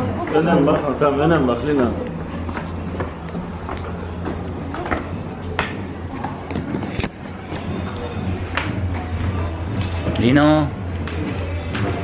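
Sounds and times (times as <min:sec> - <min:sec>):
indistinct background voices: 0:00.0 - 0:12.0
footsteps on stone steps: 0:02.0 - 0:10.2.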